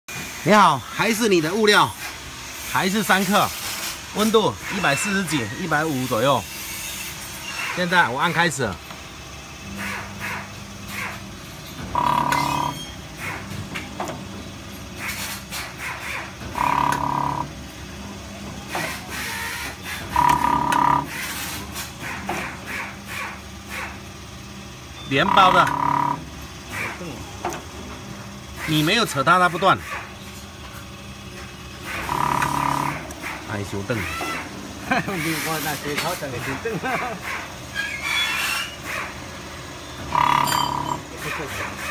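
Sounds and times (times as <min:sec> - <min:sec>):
packing machine humming: 0:08.5 - 0:28.6, 0:30.1 - 0:34.9, 0:38.8 - 0:41.9
machine low hum: 0:11.4 - 0:13.2, 0:16.4 - 0:21.5, 0:24.5 - 0:26.6, 0:31.3 - 0:33.4, 0:39.5 - 0:41.3
short beep: 0:12.0 - 0:13.0.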